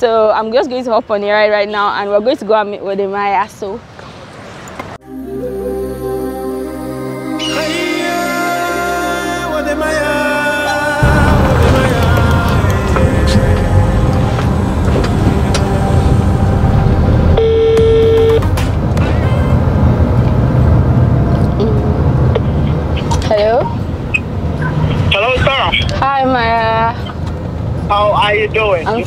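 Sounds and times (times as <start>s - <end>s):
voices: 6.4s - 16.7s, 21.6s - 27.2s, 27.8s - 29.0s
road rumble inside car: 11.0s - 29.0s
phone ringing tone: 13.1s - 18.5s.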